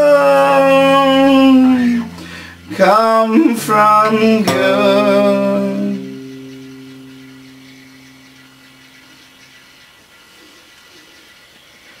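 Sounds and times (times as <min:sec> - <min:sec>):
acoustic guitar chord ringing: 0:00.0 - 0:09.7
faint hiss: 0:00.0 - 0:12.0.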